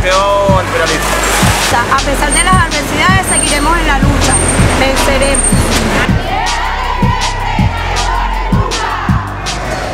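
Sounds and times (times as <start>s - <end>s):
woman speaking emphatically: 1.7s - 5.4s.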